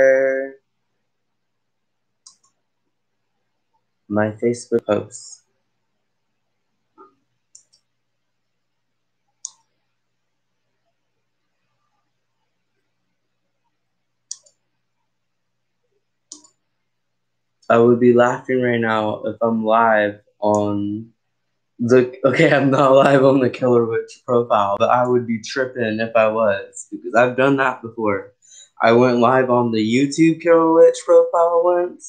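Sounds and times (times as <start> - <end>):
computer mouse clicking: 2.2 - 2.6, 7.0 - 8.0, 9.4 - 9.9, 14.3 - 14.7, 16.3 - 16.7.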